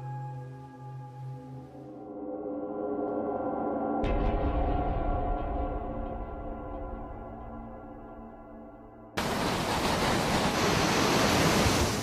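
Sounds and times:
hurricane wind roaring: 0:09.2 - 0:12.0.

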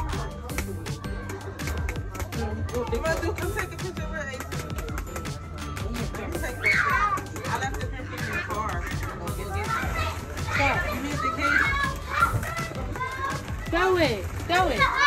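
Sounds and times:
background music: 0:00.0 - 0:15.0
children shouting at play: 0:06.4 - 0:15.0.

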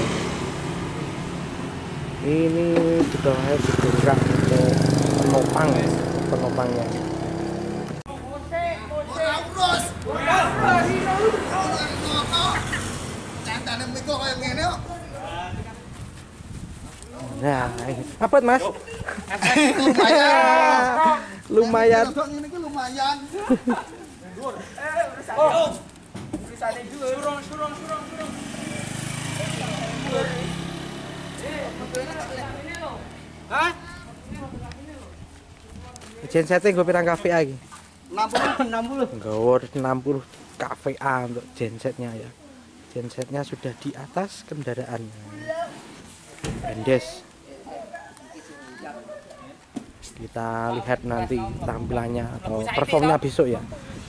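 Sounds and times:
motor scooter passing by: 0:00.0 - 0:08.0, 0:10.1 - 0:14.7, 0:27.3 - 0:33.8
people talking and calling out: 0:00.6 - 0:54.0
men's voices: 0:02.1 - 0:16.2, 0:16.9 - 0:54.0.

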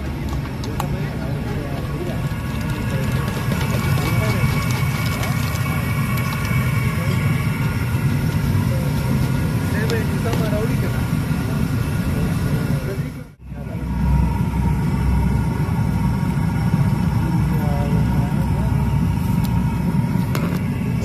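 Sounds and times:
traffic and engine rumble: 0:00.0 - 0:21.0.

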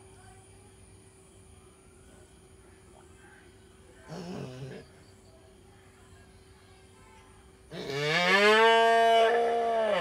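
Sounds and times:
calf mooing: 0:07.8 - 0:10.0.

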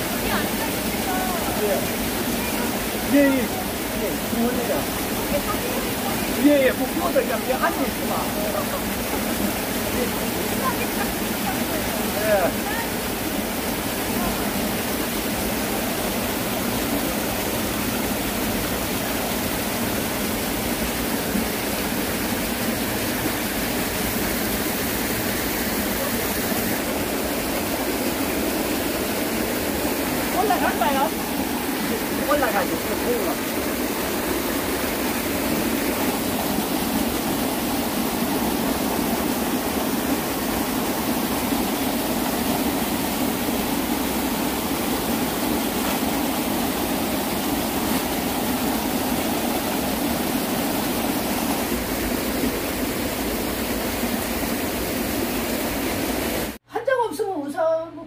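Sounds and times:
stream running over rocks: 0:00.0 - 0:56.6.

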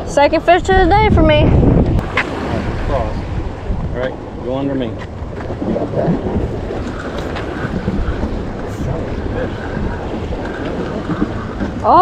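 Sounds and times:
wind blowing across microphone: 0:00.0 - 0:12.0.

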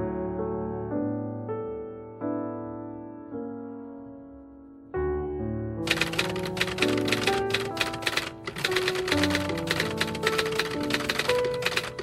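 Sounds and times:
piano music: 0:00.0 - 0:12.0
typewriter keys clacking: 0:05.8 - 0:12.0.

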